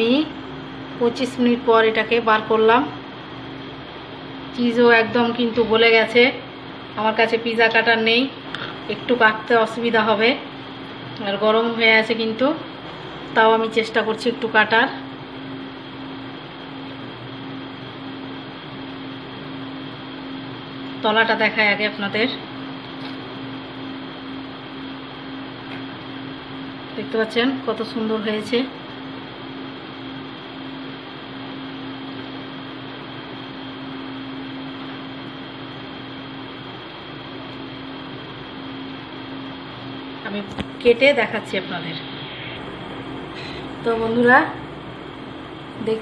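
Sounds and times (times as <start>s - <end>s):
constant low hum: 0.0s - 46.0s.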